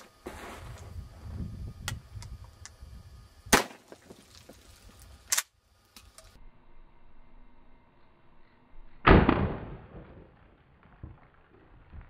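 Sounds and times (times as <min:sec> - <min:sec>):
shotgun blast: 0:03.5 - 0:03.9, 0:09.0 - 0:10.4.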